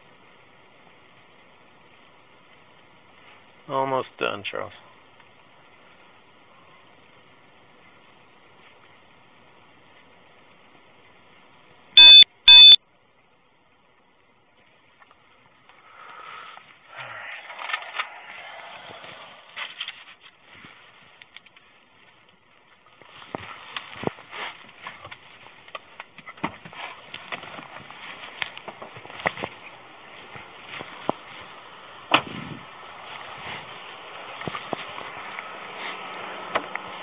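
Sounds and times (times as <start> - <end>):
loud electronic beeps: 12.0 - 12.8.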